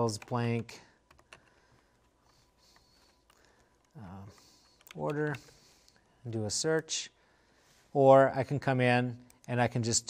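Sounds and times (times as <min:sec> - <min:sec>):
keystrokes on a computer keyboard: 0:00.0 - 0:06.2.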